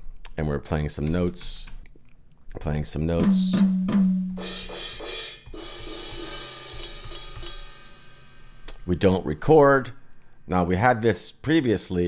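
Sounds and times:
cymbal and hi-hat hits: 3.2s - 9.0s.

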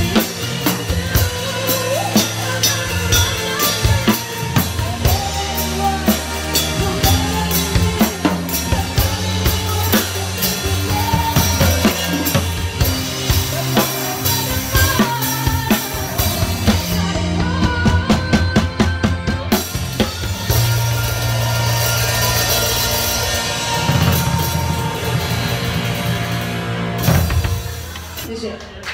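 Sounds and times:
drum kit playing: 0.0s - 28.5s
backing track: 0.0s - 28.9s.

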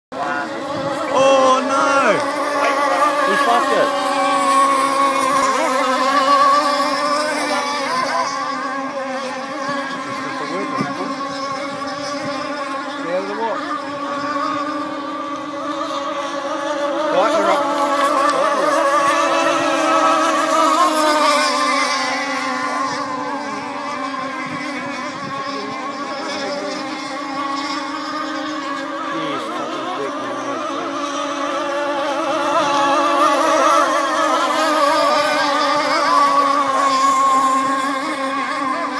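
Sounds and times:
model boat engines whining: 0.1s - 38.9s.

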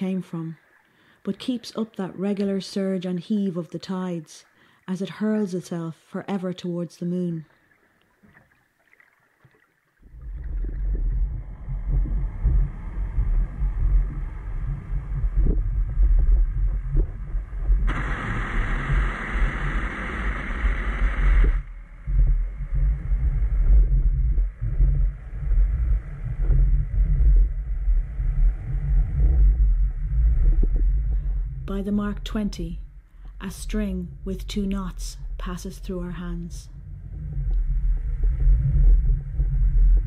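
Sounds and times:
deep uneven rumble: 10.0s - 40.0s
loud rushing hiss: 17.9s - 21.7s.

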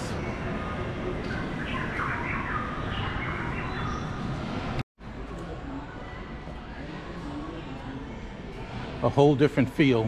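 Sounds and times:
shopping mall ambience: 0.0s - 10.0s.

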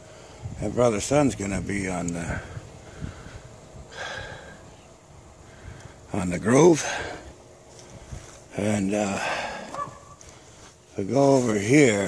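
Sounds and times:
man breathing out: 2.5s - 4.7s, 9.2s - 10.7s.

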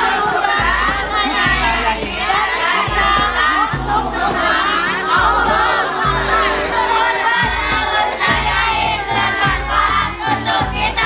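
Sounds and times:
women shouting a cheer: 0.0s - 10.2s.

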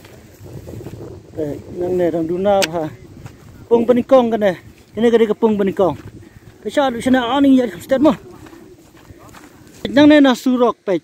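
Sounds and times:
wind rumble on microphone: 0.0s - 9.8s
person speaking: 1.3s - 11.0s.

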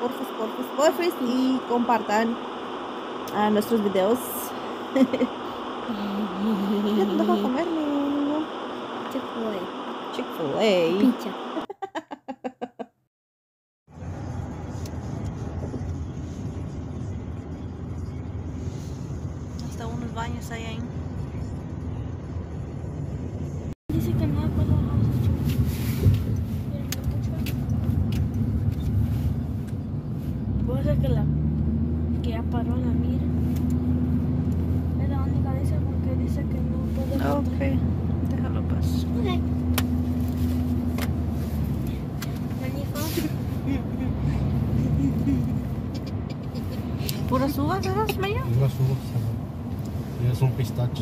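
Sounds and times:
car cabin road and engine hum: 0.0s - 11.7s, 13.9s - 51.0s.

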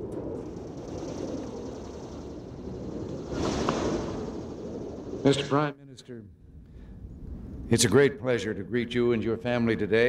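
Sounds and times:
rush of noise: 0.0s - 5.7s.

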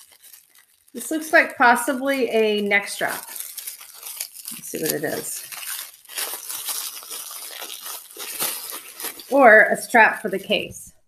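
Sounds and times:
plastic packaging rustling: 0.0s - 10.8s.

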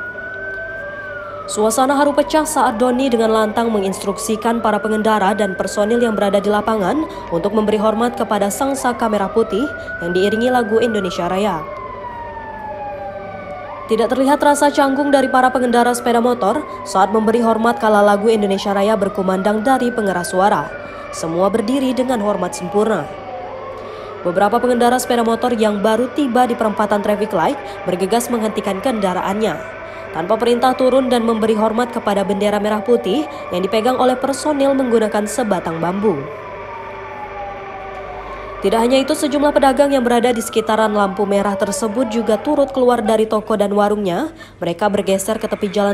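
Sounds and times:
siren wailing slowly: 0.0s - 45.9s.

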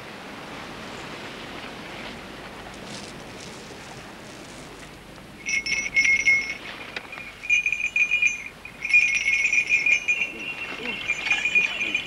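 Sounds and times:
small bells jingling: 5.4s - 12.0s.

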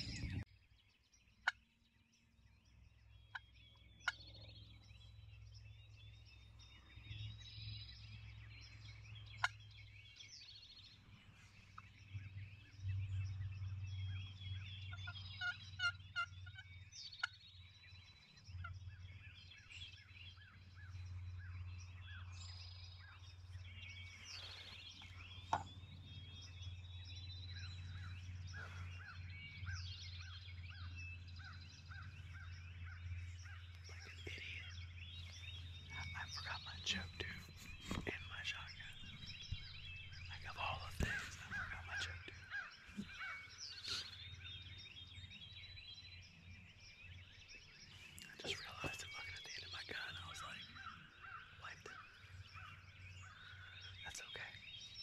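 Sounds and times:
songbirds chorus: 0.0s - 55.0s.

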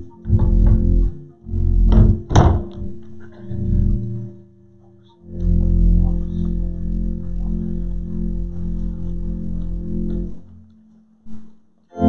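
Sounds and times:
low organ notes: 0.0s - 12.0s.

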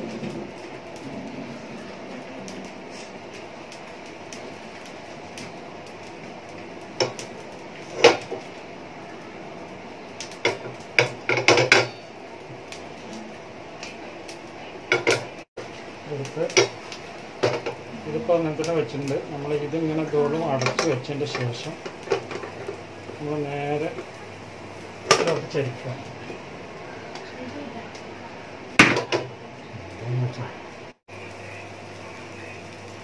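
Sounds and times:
steady hiss: 0.0s - 33.0s
frying pan knocking on stove grate: 10.2s - 12.0s, 14.9s - 15.3s, 16.5s - 17.8s, 20.6s - 22.6s, 28.8s - 29.3s.

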